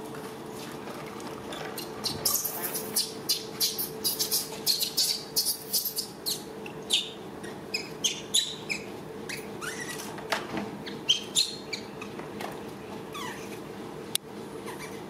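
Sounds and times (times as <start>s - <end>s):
faint steady hum: 0.0s - 15.0s
small animals chirping and squeaking: 1.5s - 10.1s, 10.8s - 12.2s, 13.1s - 13.6s, 14.7s - 15.0s.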